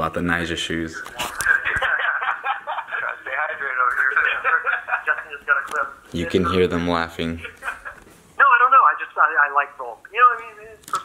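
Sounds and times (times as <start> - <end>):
men talking over phone speaker: 0.0 - 10.8.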